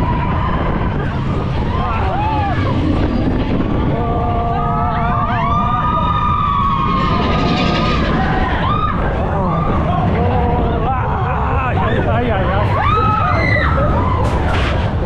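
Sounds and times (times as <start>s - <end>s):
riders screaming and whooping: 0.0s - 15.0s
roller coaster rumbling on track: 0.0s - 15.0s.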